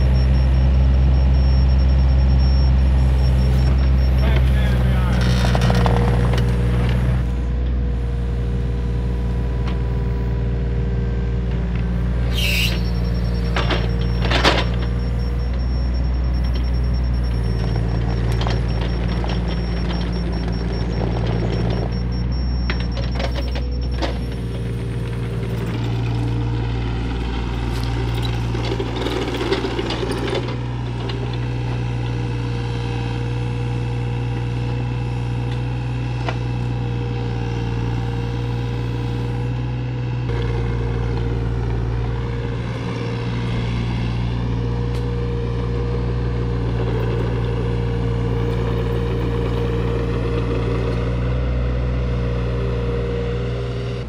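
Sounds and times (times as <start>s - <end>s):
engine running steadily: 0.0s - 54.0s.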